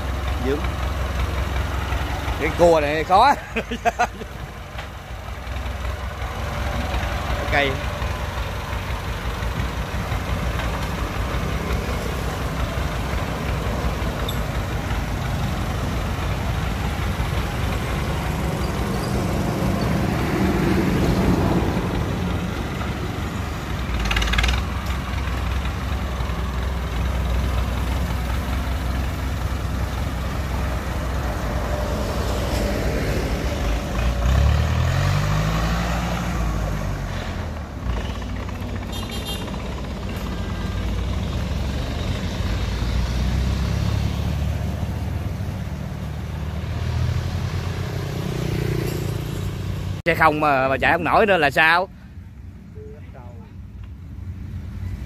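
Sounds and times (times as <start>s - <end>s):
tractor diesel engine running: 0.0s - 48.3s.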